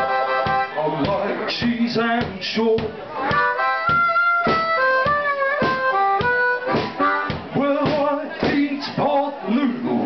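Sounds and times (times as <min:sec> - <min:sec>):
harmonica playing: 0:00.0 - 0:01.5, 0:03.2 - 0:07.8
drum beat: 0:00.0 - 0:09.2
person singing: 0:07.0 - 0:10.0.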